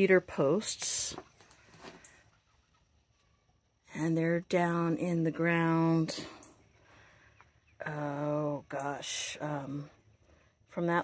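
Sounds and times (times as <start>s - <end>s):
faint chickens clucking: 1.2s - 3.8s.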